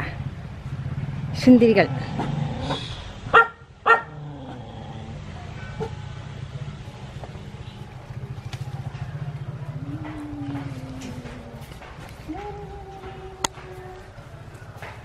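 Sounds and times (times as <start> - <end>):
dog barking: 2.7 - 4.2.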